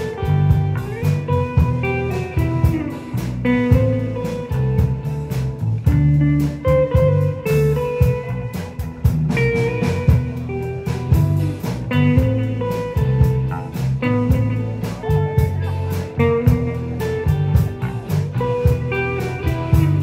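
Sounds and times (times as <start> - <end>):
bass guitar: 0.0 - 20.0
drum kit beat: 0.0 - 20.0
electric lead guitar melody: 0.0 - 20.0.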